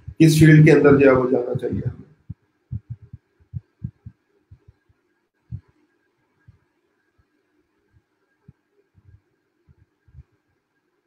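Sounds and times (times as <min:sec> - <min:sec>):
soft low thumps: 0:00.0 - 0:05.7, 0:08.0 - 0:10.4
faint steady hum: 0:00.0 - 0:11.0.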